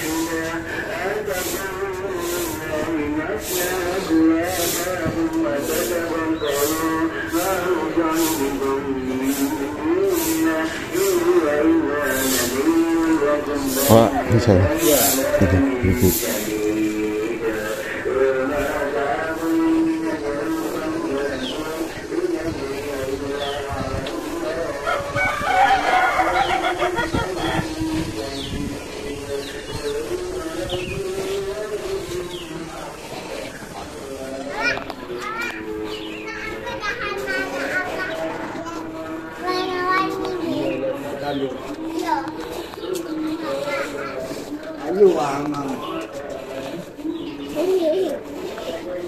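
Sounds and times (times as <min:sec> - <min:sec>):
low steady voice-like tone: 0:15.3 - 0:16.4
rooster crowing: 0:24.8 - 0:27.5.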